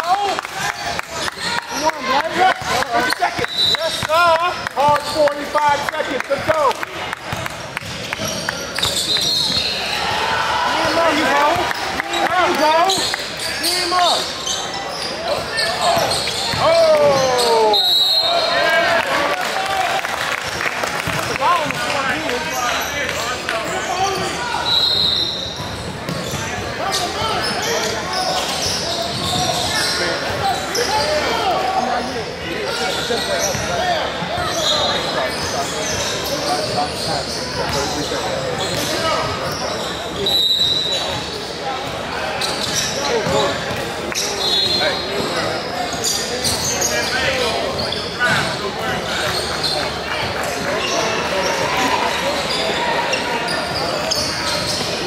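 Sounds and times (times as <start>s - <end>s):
voices talking and calling out: 0.0s - 6.9s, 8.3s - 20.3s, 20.9s - 55.0s.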